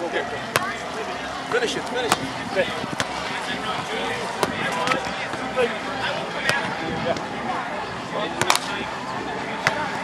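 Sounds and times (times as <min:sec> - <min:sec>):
background chatter: 0:00.0 - 0:10.0
volleyball being hit: 0:00.5 - 0:00.8, 0:02.1 - 0:02.3, 0:04.4 - 0:05.0, 0:08.4 - 0:08.7.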